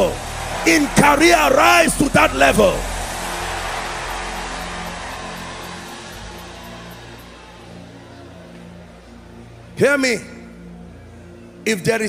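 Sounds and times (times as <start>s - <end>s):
congregation crying out and praying: 0.0s - 10.8s.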